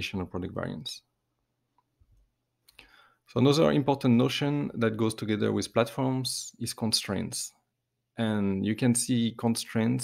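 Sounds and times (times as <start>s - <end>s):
soft breath: 2.7s - 3.3s.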